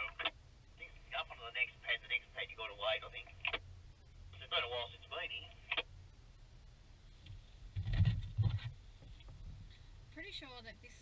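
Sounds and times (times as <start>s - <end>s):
voice over cb radio: 0.0s - 3.6s, 4.4s - 5.8s
low steady hum: 0.0s - 11.0s
low rumble with thump: 7.2s - 9.8s.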